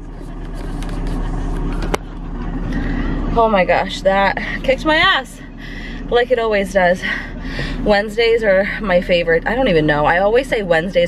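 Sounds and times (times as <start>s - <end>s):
cloth rubbing on camera: 0.0s - 1.8s
low car hum: 0.0s - 11.0s.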